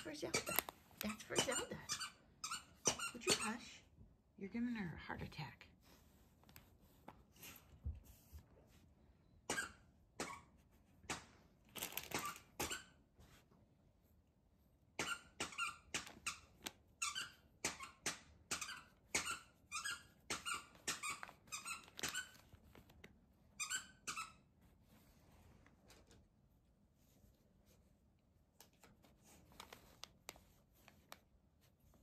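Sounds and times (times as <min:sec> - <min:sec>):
wrapping paper crinkling: 0:11.7 - 0:12.5, 0:21.2 - 0:23.1, 0:28.8 - 0:31.2.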